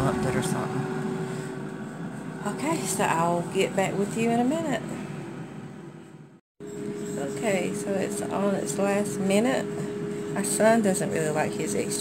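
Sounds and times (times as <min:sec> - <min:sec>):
air fryer fan whirring: 0:00.0 - 0:04.6, 0:06.7 - 0:12.0.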